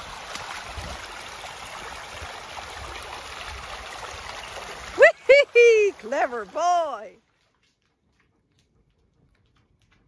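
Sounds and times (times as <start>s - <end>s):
water rushing down a channel: 0.0s - 7.8s.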